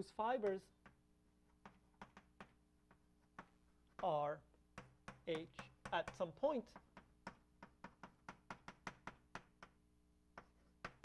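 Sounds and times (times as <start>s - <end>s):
chalk tapping on blackboard: 0.4s - 11.0s.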